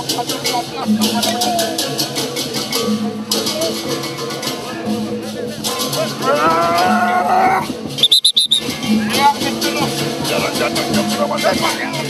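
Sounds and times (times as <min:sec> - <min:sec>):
music: 0:00.0 - 0:12.0
person crying out: 0:06.3 - 0:07.7
shrill whistle blasts: 0:08.0 - 0:08.7.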